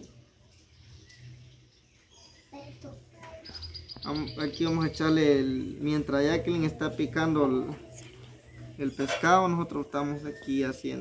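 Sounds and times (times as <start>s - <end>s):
faint bird chirp: 0.0s - 11.0s.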